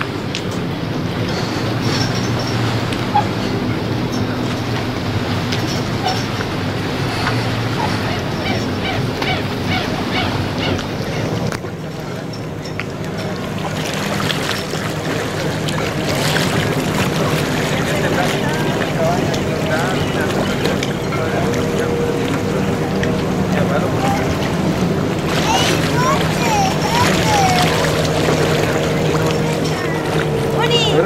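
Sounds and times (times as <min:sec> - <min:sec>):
boat engine humming: 0:00.0 - 0:31.0
water washing: 0:00.0 - 0:31.0
indistinct voices: 0:12.0 - 0:31.0.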